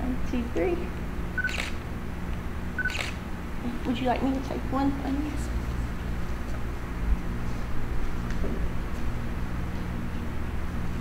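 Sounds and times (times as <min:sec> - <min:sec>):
camera focus beep: 0:01.4 - 0:01.8, 0:02.8 - 0:03.2
camera shutter click: 0:01.4 - 0:01.8, 0:02.8 - 0:03.2.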